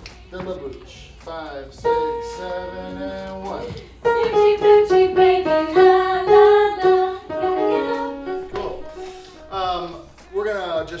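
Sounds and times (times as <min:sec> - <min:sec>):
upright piano notes: 0:01.8 - 0:03.4, 0:04.0 - 0:10.1.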